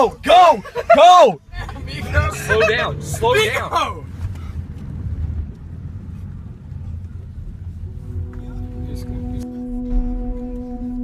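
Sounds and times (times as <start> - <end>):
car road and engine rumble: 0.0 - 11.0
steady humming tone: 1.6 - 11.0.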